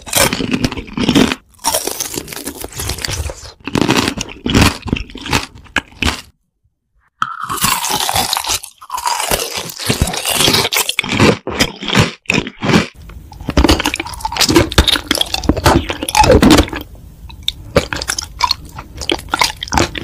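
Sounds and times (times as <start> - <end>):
crunchy chewing: 0.0 - 6.3, 7.2 - 20.0.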